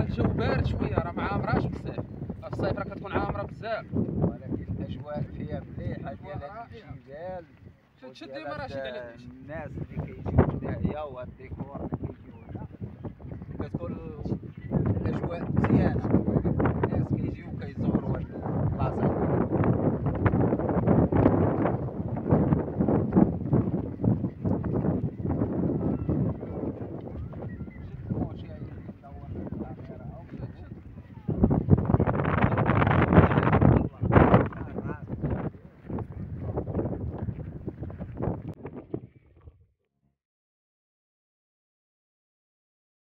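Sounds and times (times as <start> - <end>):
wind buffeting microphone: 0.0 - 39.7.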